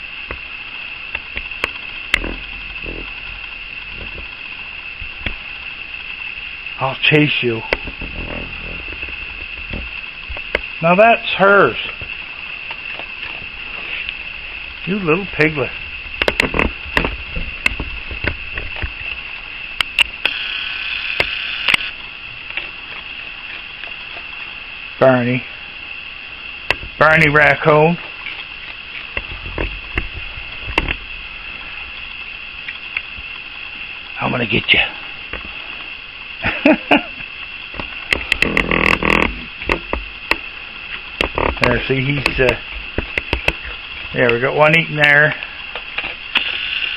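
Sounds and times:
raccoon growling: 0:02.0 - 0:05.4, 0:06.8 - 0:09.9, 0:38.2 - 0:40.0
sharp clicks: 0:16.2 - 0:19.0, 0:19.8 - 0:22.6, 0:37.8 - 0:40.5, 0:45.7 - 0:46.9.

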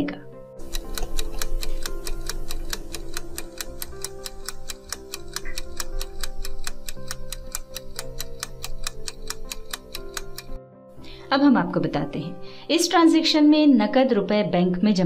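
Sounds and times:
background music with held notes: 0:00.0 - 0:15.0
clock-like ticking: 0:00.6 - 0:10.6.

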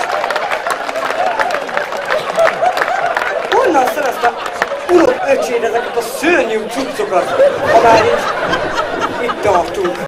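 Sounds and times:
voices talking over each other: 0:03.5 - 0:10.0.

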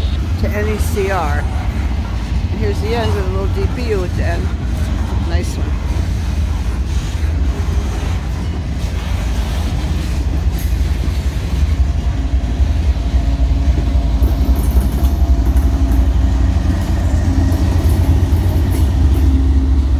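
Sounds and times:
locomotive engine hum: 0:00.0 - 0:19.9
train wheels rumbling on rails: 0:00.0 - 0:19.9.

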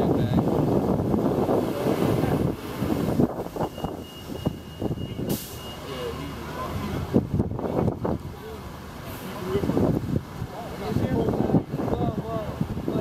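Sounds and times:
bus engine running: 0:00.0 - 0:13.0
street traffic: 0:00.0 - 0:13.0
short hiss: 0:05.3 - 0:05.7.

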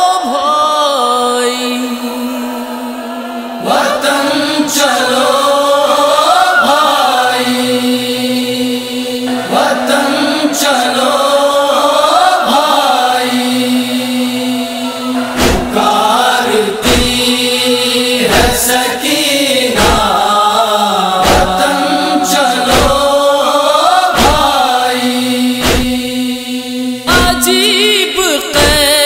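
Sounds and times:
man chanting a lament: 0:00.0 - 0:29.0
steady held drone: 0:01.8 - 0:27.7.

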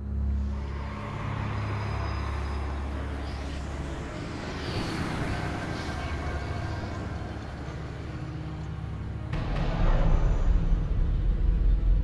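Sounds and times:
low rumble: 0:05.4 - 0:12.0.

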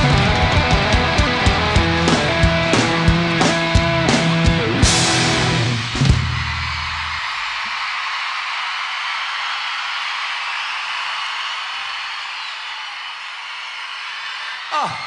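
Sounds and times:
rock band final chord: 0:00.0 - 0:06.2
audience cheering and applauding: 0:00.0 - 0:15.0.

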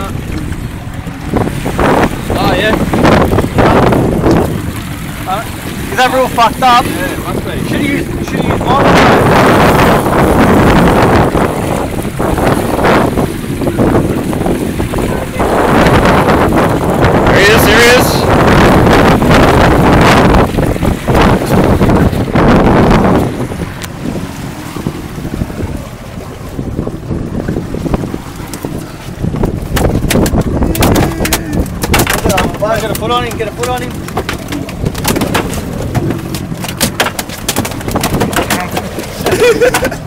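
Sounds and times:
water rushing along boat: 0:00.0 - 0:40.0
wind buffeting microphone: 0:00.0 - 0:40.0.

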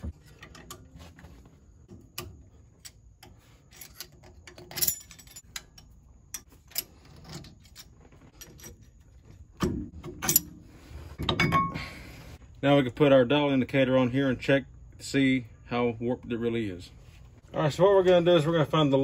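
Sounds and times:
metal clatter: 0:01.9 - 0:10.6.

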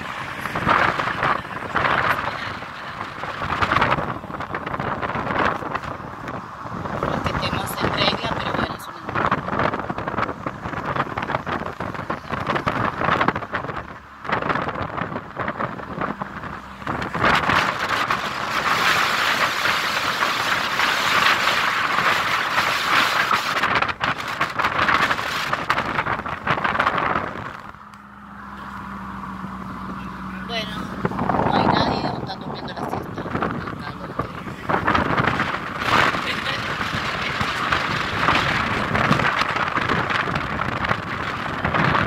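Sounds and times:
car hum: 0:00.0 - 0:42.0
road noise: 0:00.0 - 0:42.0
wind buffeting microphone: 0:00.0 - 0:42.0.

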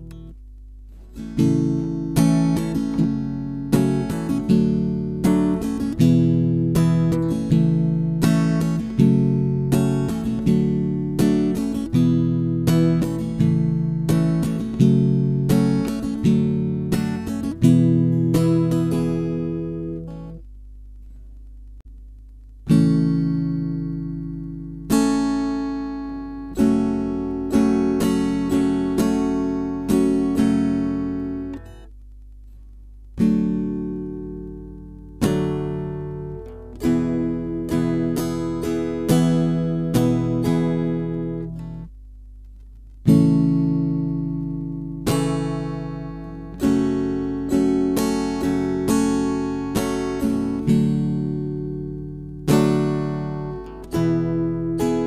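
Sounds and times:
acoustic guitar strumming: 0:00.0 - 0:20.5, 0:22.6 - 0:42.0, 0:42.8 - 0:55.0.

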